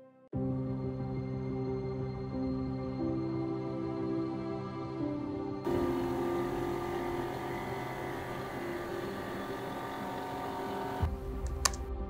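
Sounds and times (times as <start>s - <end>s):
flatbed scanner running: 5.7s - 11.8s
sharp clicks: 10.6s - 11.9s.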